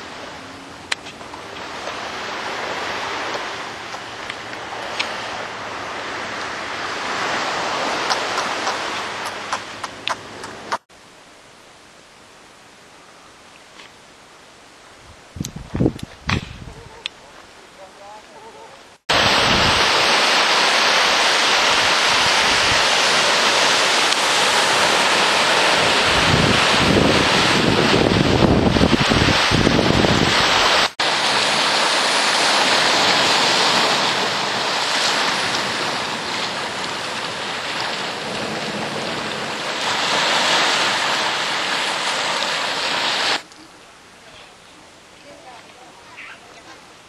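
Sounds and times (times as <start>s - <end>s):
ocean surf: 0.0s - 11.4s, 17.6s - 47.0s
wind buffeting microphone: 15.0s - 17.3s, 19.1s - 20.3s, 21.6s - 30.9s.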